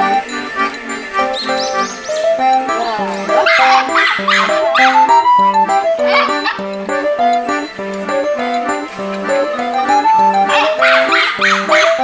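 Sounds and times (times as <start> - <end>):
light background music: 0.0 - 12.0
small dog yapping: 3.3 - 5.2, 6.0 - 6.6, 10.5 - 12.0.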